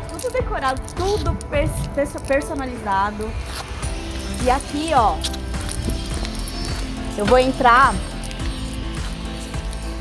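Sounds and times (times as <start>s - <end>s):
background music: 0.0s - 10.0s
heeled footsteps on stone: 0.0s - 10.0s.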